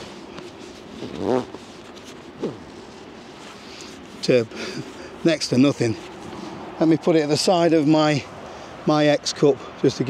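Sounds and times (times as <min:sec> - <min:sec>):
fabric rustling: 0:00.0 - 0:06.6.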